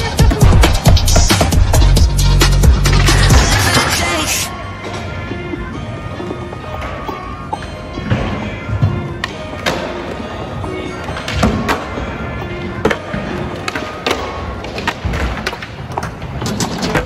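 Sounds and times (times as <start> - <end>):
music: 0.0 - 17.0.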